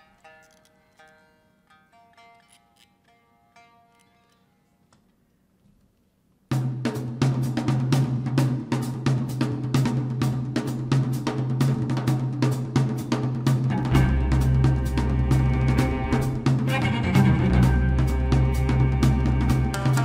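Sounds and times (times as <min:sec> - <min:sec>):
plucked shamisen notes: 0:00.0 - 0:04.8, 0:13.7 - 0:20.0
drum kit with cymbals: 0:06.5 - 0:20.0
held low bass note: 0:13.7 - 0:20.0.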